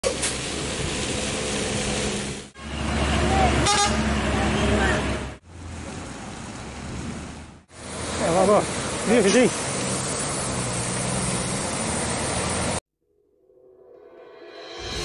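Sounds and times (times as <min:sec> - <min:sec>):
heavy trucks and road traffic: 0:00.0 - 0:12.8
vehicle horn toot: 0:03.6 - 0:04.1.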